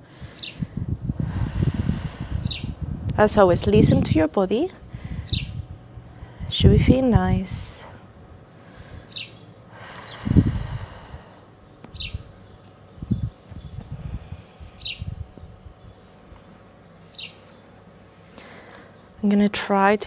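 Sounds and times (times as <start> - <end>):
bird chirping: 5.3 - 6.3, 9.0 - 10.3, 11.2 - 14.0, 14.8 - 19.6.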